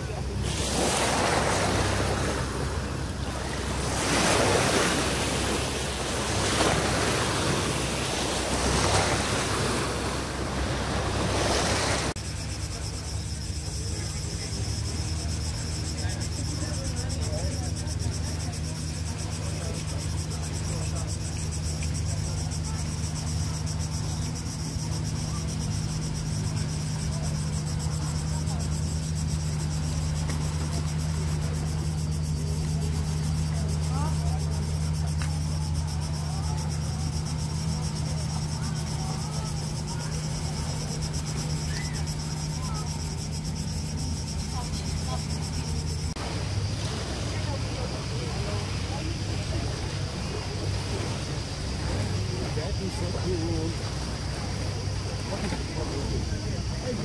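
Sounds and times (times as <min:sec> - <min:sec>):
cicadas buzzing: 0:00.0 - 0:57.0
faint distant voices: 0:00.0 - 0:57.0
low engine-like hum: 0:00.0 - 0:57.0.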